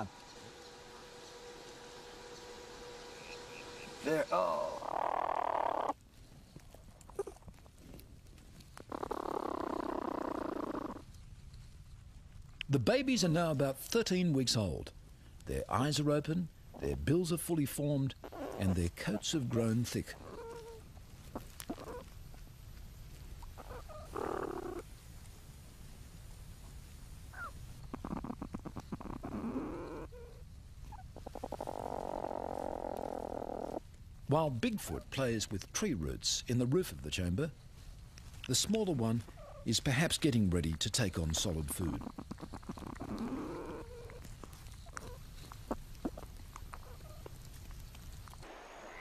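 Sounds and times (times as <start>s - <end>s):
platypus rasping: 0.0s - 6.0s, 41.1s - 49.0s
platypus croaking growl call: 3.3s - 6.0s, 41.9s - 44.2s.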